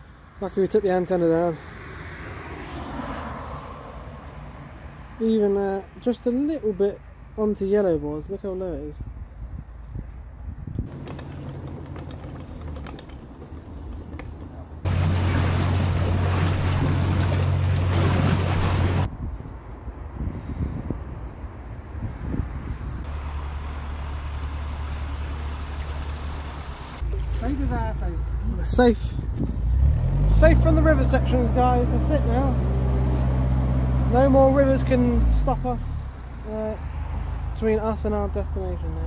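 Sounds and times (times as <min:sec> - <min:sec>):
wind noise: 0:08.9 - 0:14.2, 0:14.8 - 0:23.1, 0:27.0 - 0:30.1
diesel engine running: 0:14.7 - 0:19.1, 0:23.1 - 0:36.6.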